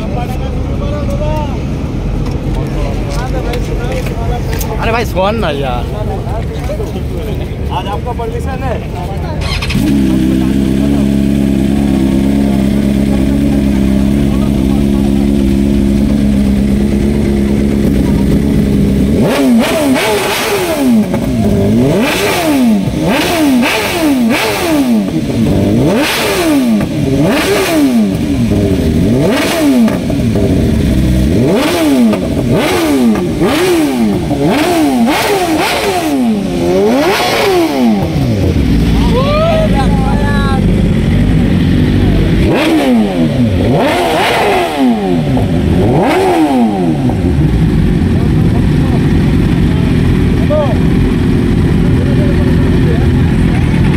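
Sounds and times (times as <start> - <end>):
motorcycle engine idling and revving: 0.0 - 53.9.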